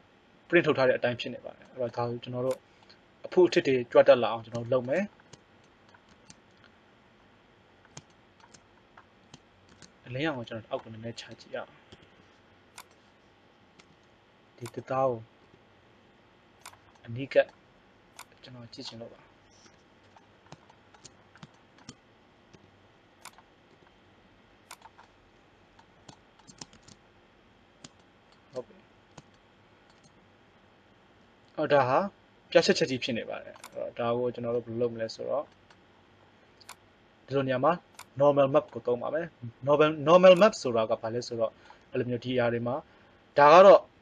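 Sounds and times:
person talking: 0:00.5 - 0:02.6, 0:03.2 - 0:05.1, 0:10.0 - 0:11.8, 0:14.6 - 0:15.3, 0:17.0 - 0:17.5, 0:18.4 - 0:19.3, 0:31.6 - 0:35.5, 0:37.3 - 0:42.8
mouse and keyboard clicks: 0:04.5 - 0:06.7, 0:07.8 - 0:10.0, 0:12.8 - 0:13.0, 0:13.8 - 0:15.6, 0:16.6 - 0:17.6, 0:18.2 - 0:24.0, 0:24.7 - 0:25.2, 0:25.8 - 0:27.0, 0:27.8 - 0:30.2, 0:33.5 - 0:33.8, 0:36.6 - 0:36.8, 0:37.9 - 0:38.8.

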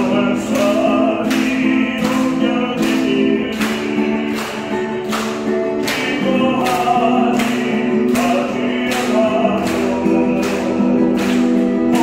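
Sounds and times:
person singing a hymn: 0:00.0 - 0:12.0
strummed guitar chords: 0:00.0 - 0:12.0.

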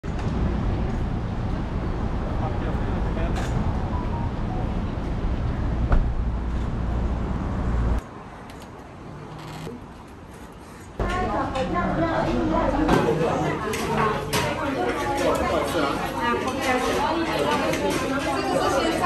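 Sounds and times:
road traffic: 0:00.0 - 0:12.9
heavy low rumble: 0:00.1 - 0:08.0.

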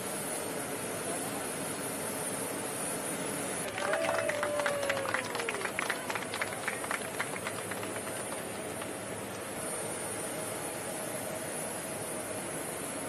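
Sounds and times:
people clapping: 0:03.6 - 0:09.0.

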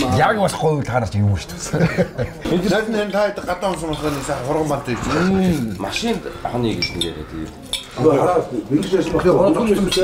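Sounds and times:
man's voice: 0:02.5 - 0:10.0
cutlery clinking on plates: 0:05.9 - 0:08.0, 0:09.2 - 0:10.0.

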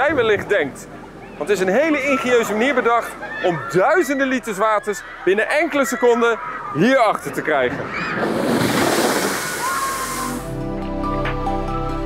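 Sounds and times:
water rushing with hissing spray: 0:08.1 - 0:10.6.

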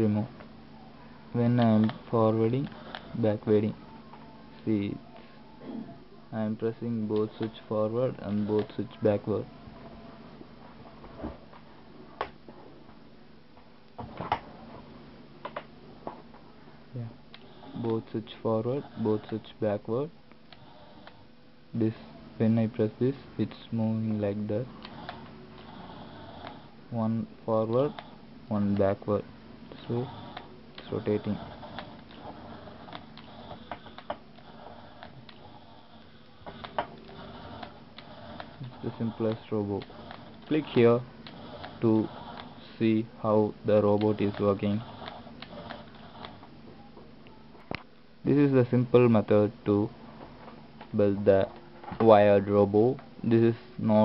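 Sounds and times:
small electric motors humming: 0:16.9 - 0:47.0.

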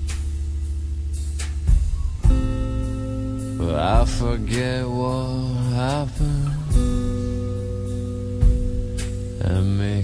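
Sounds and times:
slow indie band music: 0:00.0 - 0:10.0.

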